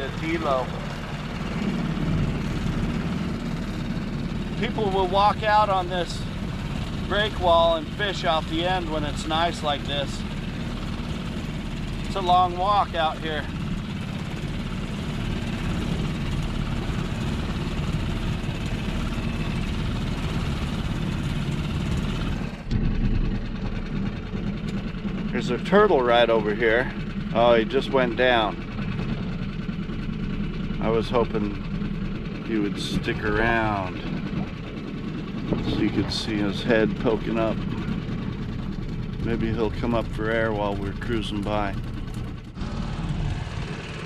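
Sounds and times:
outboard motor running: 0.0 - 44.0
wind noise: 35.4 - 36.6.

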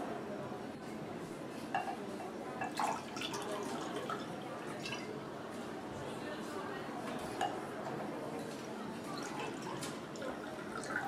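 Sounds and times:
drink pouring into glass: 2.6 - 5.1, 9.2 - 11.0.

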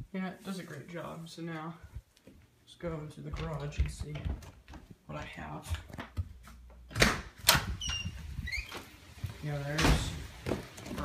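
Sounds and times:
door squeaking: 7.0 - 9.0.

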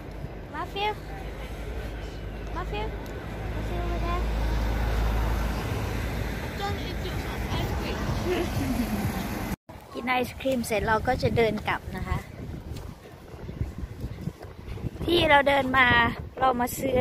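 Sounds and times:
vehicle passing: 0.8 - 9.6.

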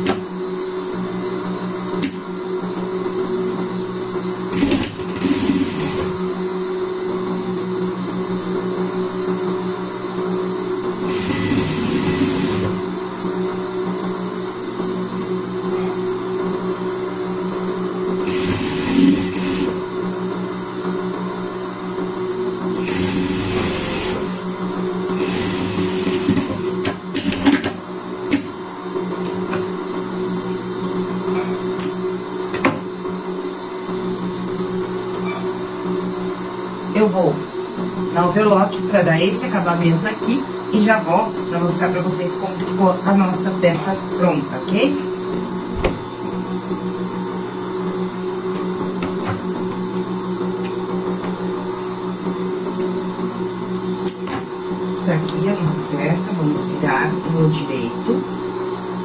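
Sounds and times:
steady hum: 0.0 - 59.0
sewing machine running: 4.5 - 6.2, 11.0 - 12.9, 18.2 - 19.9, 22.8 - 28.5.

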